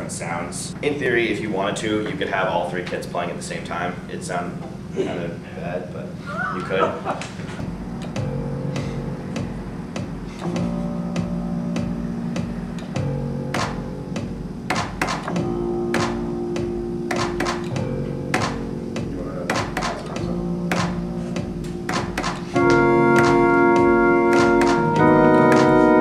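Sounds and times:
organ-like chord: 0:07.6 - 0:14.7, 0:15.3 - 0:26.0
drum machine beat: 0:07.6 - 0:26.0
held synth notes: 0:07.6 - 0:26.0.

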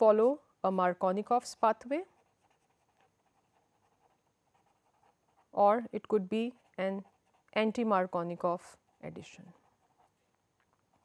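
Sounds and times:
marker scratching on paper: 0:00.0 - 0:11.0.

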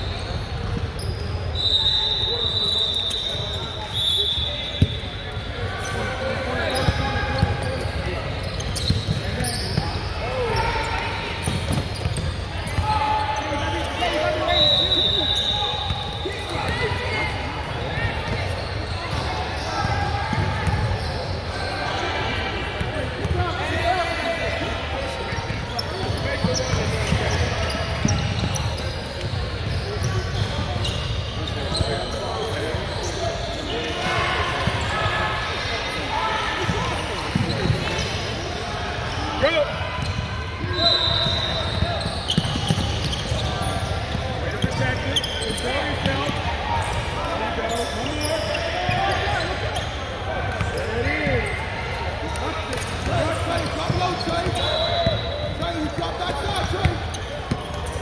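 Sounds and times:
voices echoing in gym: 0:00.0 - 0:58.0.

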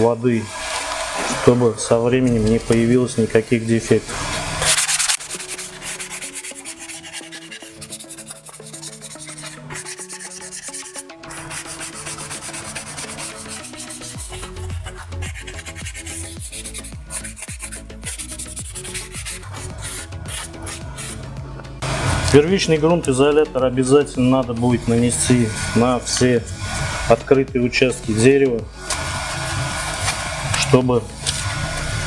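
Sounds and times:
sanding block rubbing wood: 0:04.1 - 0:22.4, 0:23.8 - 0:32.0
background music with bass: 0:07.7 - 0:32.0.

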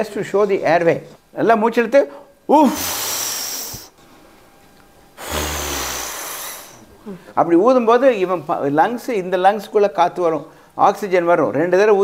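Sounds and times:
rush of air from breath: 0:02.8 - 0:03.9, 0:05.2 - 0:06.8.

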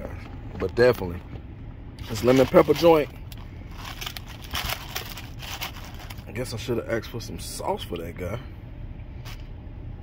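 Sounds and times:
paper wrapper crinkling: 0:02.0 - 0:06.4.

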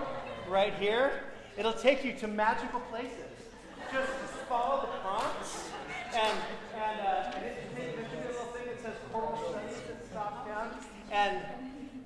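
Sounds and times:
man talking: 0:00.0 - 0:11.6.

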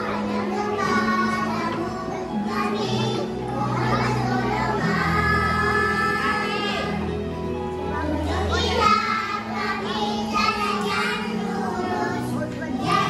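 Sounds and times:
instrumental backing music: 0:00.0 - 0:13.0
young children singing: 0:00.0 - 0:13.0.

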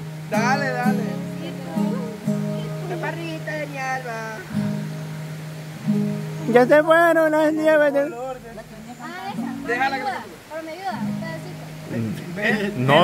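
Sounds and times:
acoustic guitar strummed: 0:00.0 - 0:13.0
voices talking: 0:00.3 - 0:04.6, 0:06.4 - 0:13.0.

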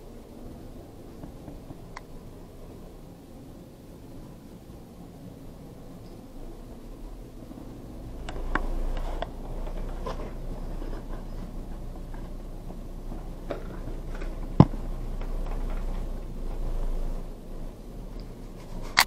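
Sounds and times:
lift low rumble: 0:00.0 - 0:18.9.

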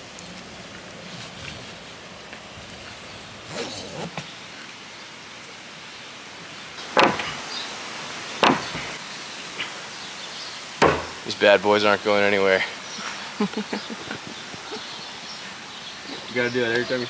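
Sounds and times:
soft strap and buckle sounds: 0:00.1 - 0:04.3
hand slapping boards: 0:08.4 - 0:08.9, 0:10.8 - 0:11.2.

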